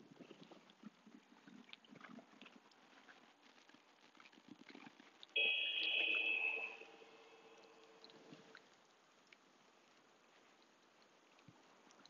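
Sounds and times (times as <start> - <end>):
timer chime ringing: 5.4 - 8.1.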